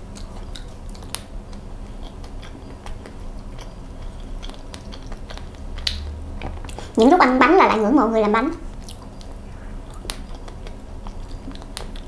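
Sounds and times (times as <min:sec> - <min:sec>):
close chewing: 0:00.0 - 0:07.0, 0:08.7 - 0:12.0
wet mouth clicks: 0:00.1 - 0:06.1, 0:08.8 - 0:12.0.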